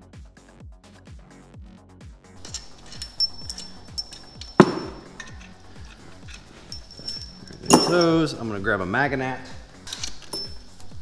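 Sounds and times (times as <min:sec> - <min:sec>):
impact tool clanking down: 0:02.4 - 0:08.3, 0:09.9 - 0:10.9
metallic clinks of bolts: 0:02.4 - 0:08.4, 0:09.8 - 0:11.0.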